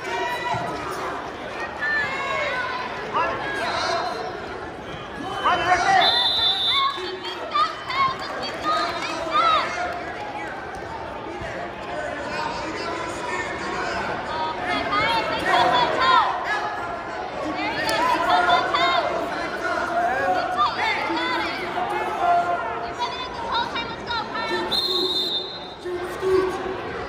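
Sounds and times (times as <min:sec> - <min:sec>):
crowd chatter: 0:00.0 - 0:27.0.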